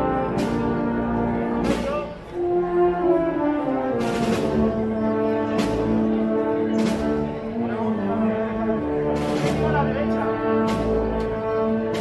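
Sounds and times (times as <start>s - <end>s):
brass chords: 0.0s - 12.0s
percussion strikes: 9.2s - 12.0s.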